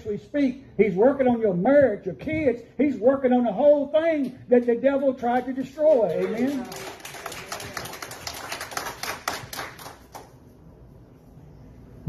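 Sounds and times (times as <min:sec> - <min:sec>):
people clapping: 0:04.6 - 0:10.5.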